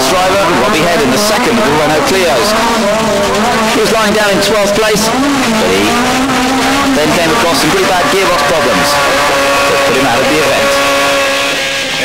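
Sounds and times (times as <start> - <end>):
car engine revving high: 0.0 - 12.0.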